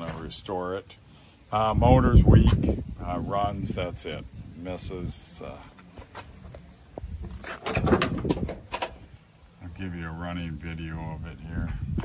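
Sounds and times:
truck door latch and hinges clunking: 7.4 - 9.0.

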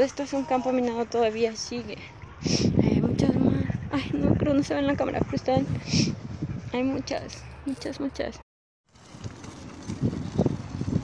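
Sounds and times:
wind noise on microphone: 2.0 - 7.3, 9.0 - 11.0.

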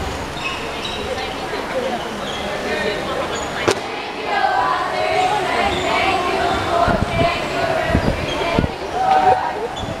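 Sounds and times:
girls chattering: 0.5 - 10.0.

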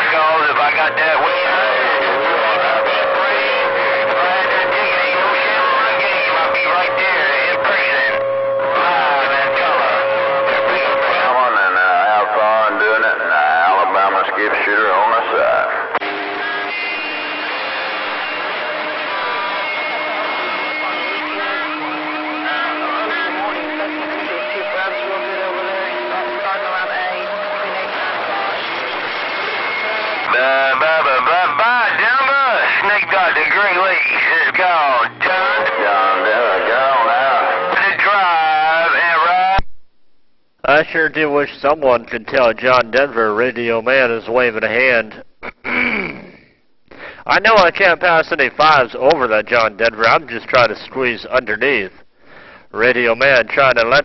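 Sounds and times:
garbled radio voices: 0.0 - 39.6, 40.6 - 54.0
radio static: 0.0 - 39.7.

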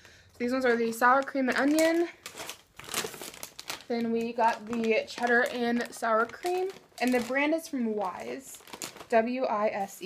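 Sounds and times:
plastic chip bags crinkling: 0.0 - 10.0.

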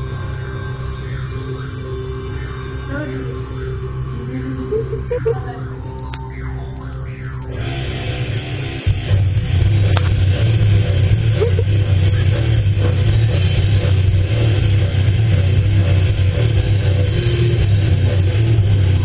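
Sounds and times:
faint musical tones: 0.0 - 19.0
loud steady low drone: 0.0 - 19.0.

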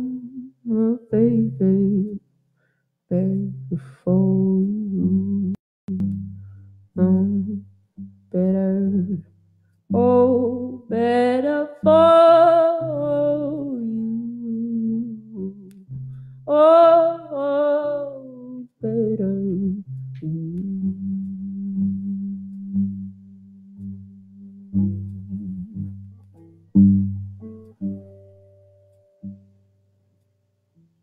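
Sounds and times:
woman singing: 0.0 - 2.2, 3.1 - 6.1, 7.0 - 7.6, 8.3 - 9.3, 9.9 - 15.8, 16.5 - 23.2.

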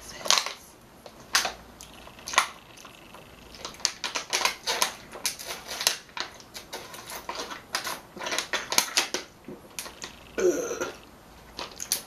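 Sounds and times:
plastic bottle crinkling: 1.1 - 10.2, 10.8 - 12.0.

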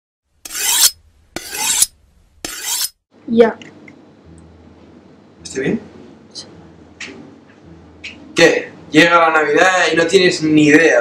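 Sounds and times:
knife scraping on sharpening steel: 0.4 - 3.0.

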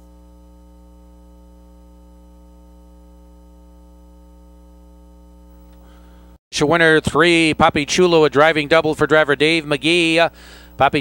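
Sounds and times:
electrical mains hum: 0.0 - 6.4.

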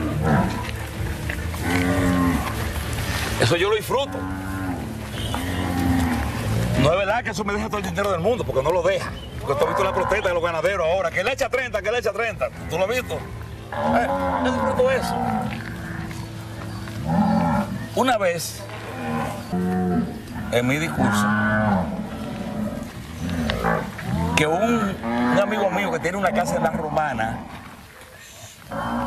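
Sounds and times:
cow mooing: 0.0 - 2.7, 4.0 - 7.0, 9.5 - 10.3, 12.6 - 16.3, 17.0 - 27.8, 28.7 - 29.0
faint steady cattle lowing: 0.0 - 11.3, 12.2 - 29.0.

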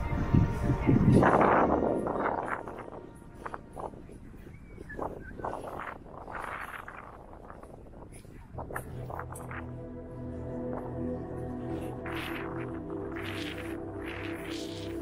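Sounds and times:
background music with low notes: 0.0 - 15.0
faint outdoor ambience: 0.0 - 15.0.

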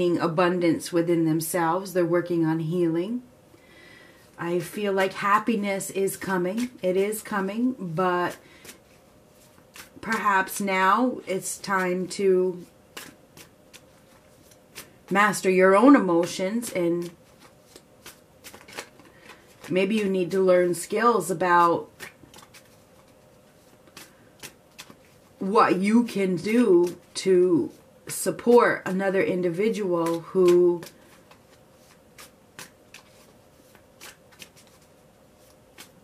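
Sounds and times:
cards flicking and tapping: 12.9 - 15.2, 16.6 - 20.3, 21.9 - 25.3, 29.7 - 36.0.

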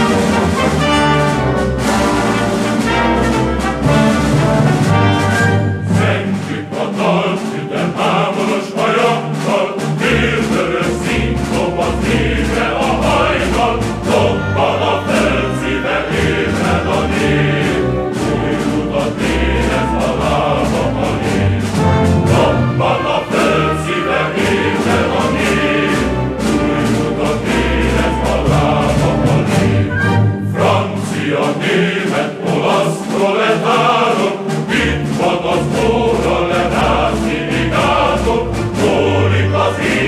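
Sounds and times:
choir singing a march song: 0.0 - 40.0
instrumental accompaniment: 0.0 - 40.0.

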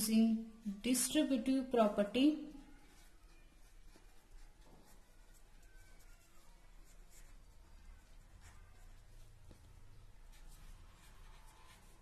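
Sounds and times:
marker rubbing on paper: 2.7 - 12.0.

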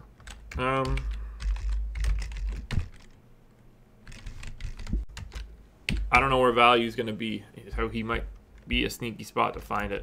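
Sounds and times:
computer keyboard typing: 0.2 - 3.2, 4.0 - 6.3.

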